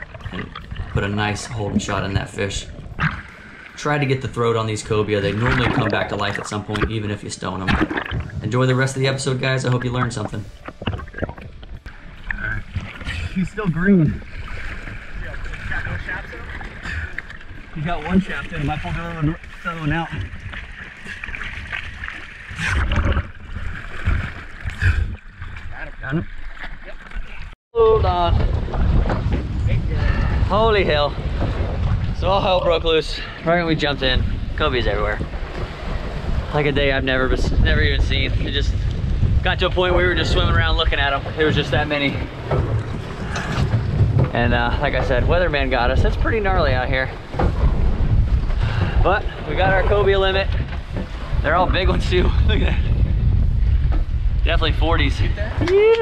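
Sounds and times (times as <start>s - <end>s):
wind buffeting microphone: 0.0s - 25.9s, 27.8s - 56.0s
water sloshing and splashing: 0.0s - 56.0s
waves washing against hull: 0.0s - 56.0s
water slap: 5.3s - 7.0s, 7.6s - 8.5s.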